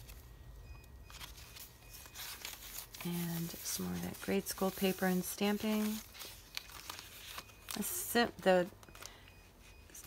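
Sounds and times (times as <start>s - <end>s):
quiet room hum: 0.0s - 10.0s
paper page turning: 1.1s - 8.0s.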